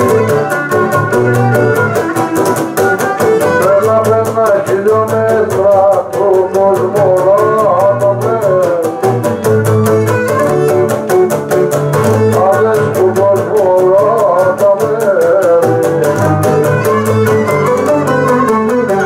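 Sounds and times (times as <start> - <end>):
man singing into microphone: 0.0 - 2.0, 3.0 - 9.7, 11.9 - 19.0
bowed lyra melody: 0.0 - 3.7, 16.2 - 19.0
lute strumming steady rhythm: 0.0 - 19.0.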